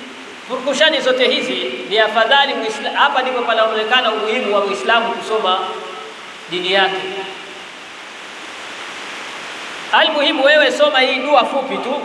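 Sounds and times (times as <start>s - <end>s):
steady hiss: 0.0s - 12.0s
man speaking into a microphone: 0.5s - 5.9s, 6.5s - 7.4s, 9.9s - 12.0s.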